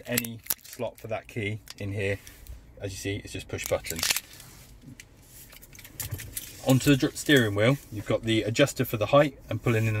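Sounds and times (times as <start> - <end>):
handling rustle: 3.5 - 8.4.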